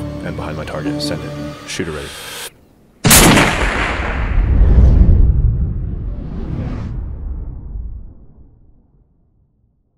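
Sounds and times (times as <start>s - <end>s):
rifle shot with rumbling report: 3.0s - 4.6s.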